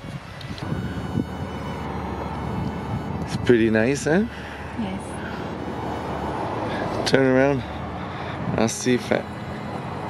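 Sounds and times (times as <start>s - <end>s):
wind blowing across microphone: 0.0s - 1.8s.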